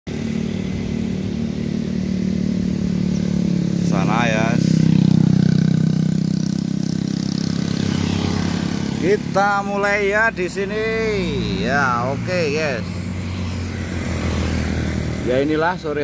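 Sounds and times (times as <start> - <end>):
motorcycle engine passing: 0.1 - 16.0.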